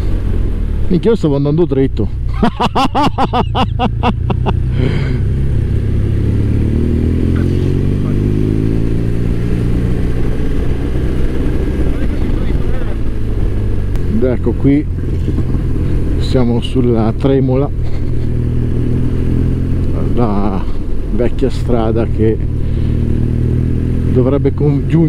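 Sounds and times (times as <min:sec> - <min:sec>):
motorcycle engine: 0:00.0 - 0:25.0
person laughing: 0:02.3 - 0:05.3.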